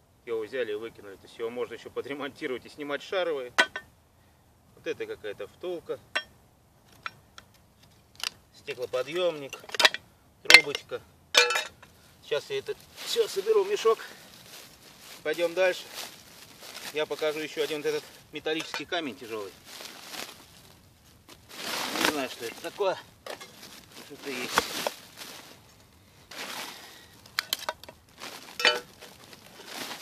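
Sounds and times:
sack rustling: 0:12.6 - 0:30.0.

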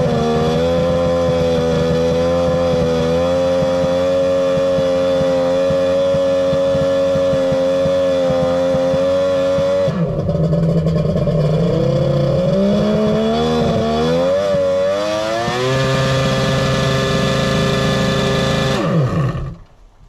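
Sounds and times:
jet ski engine revving: 0:00.0 - 0:19.8.

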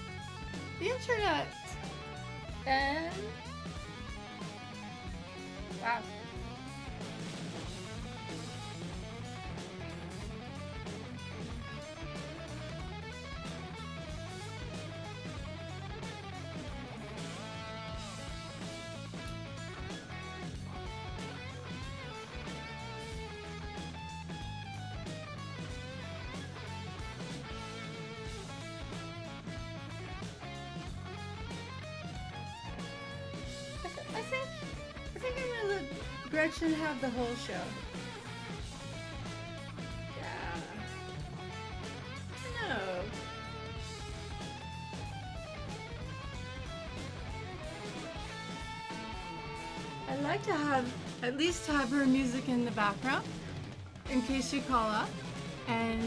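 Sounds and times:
electric guitar lead: 0:00.0 - 0:56.0
steady bass: 0:00.0 - 0:56.0.

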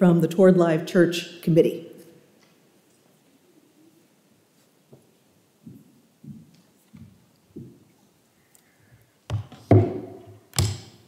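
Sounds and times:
sharp knocks on wood: 0:09.3 - 0:10.9
thumps on wooden pulpit: 0:09.3 - 0:10.9.

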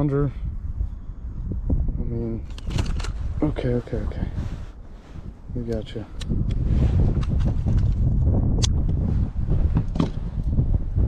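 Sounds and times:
low microphone rumble: 0:00.0 - 0:11.0.

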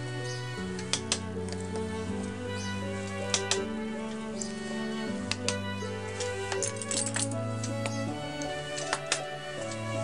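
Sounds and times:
instrumental background music: 0:00.0 - 0:10.0.

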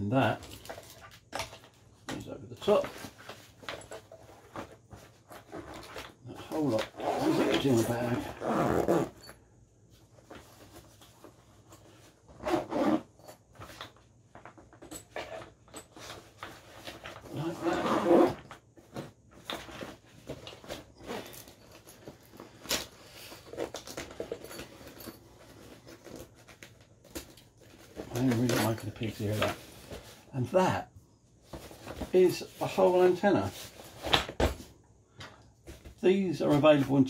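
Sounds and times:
nylon bag rustling: 0:04.4 - 0:09.2, 0:19.7 - 0:30.3
zipper closing: 0:06.5 - 0:09.4, 0:12.3 - 0:13.2, 0:17.2 - 0:18.5, 0:21.0 - 0:21.7.

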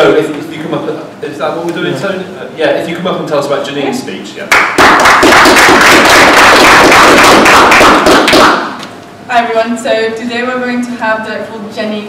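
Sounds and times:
audience applauding: 0:04.5 - 0:08.8.

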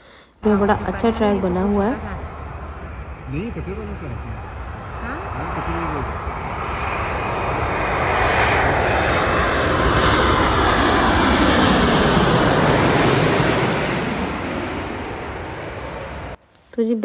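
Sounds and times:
jet airliner engine noise overhead: 0:00.4 - 0:16.4.

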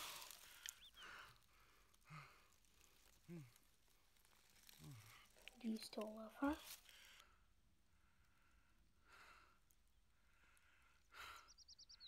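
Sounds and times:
man breathing and sighing: 0:00.0 - 0:02.6
small bird chirping: 0:00.4 - 0:01.3, 0:11.4 - 0:12.0.

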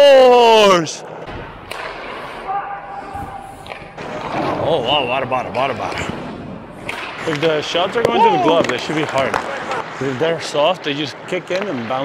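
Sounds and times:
stick hitting puck: 0:01.6 - 0:02.4, 0:03.5 - 0:04.6, 0:05.5 - 0:09.9
skates scraping on ice: 0:03.0 - 0:12.0.

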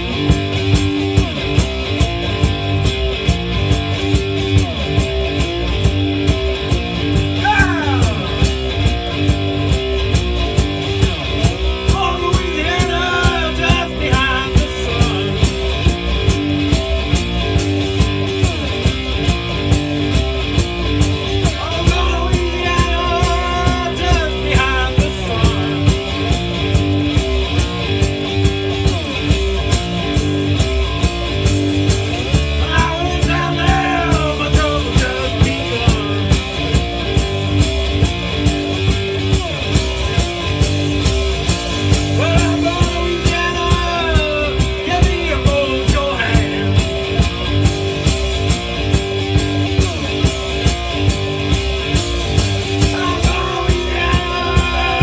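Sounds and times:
slide guitar blues riff: 0:00.0 - 0:55.0.

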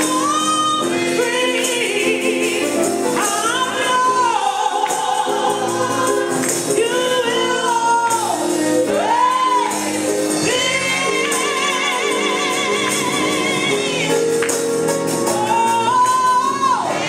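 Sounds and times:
tambourine shaking: 0:00.0 - 0:15.6
gospel choir singing: 0:00.0 - 0:17.0
organ chords: 0:00.0 - 0:17.0.

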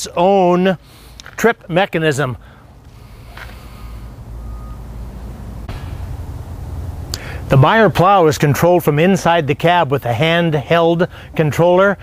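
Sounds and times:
truck engine idling: 0:02.4 - 0:12.0.

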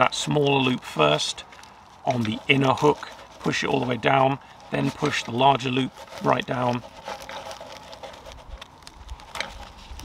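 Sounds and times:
plastic handling noise: 0:00.0 - 0:10.0.

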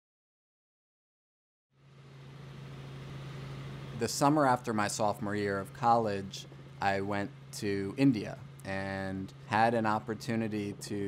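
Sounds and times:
steady low hum with hiss: 0:01.8 - 0:11.0.

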